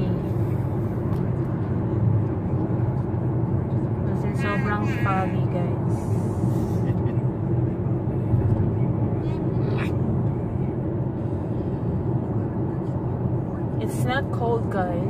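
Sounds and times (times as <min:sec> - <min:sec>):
car road and engine noise: 0:00.0 - 0:15.0.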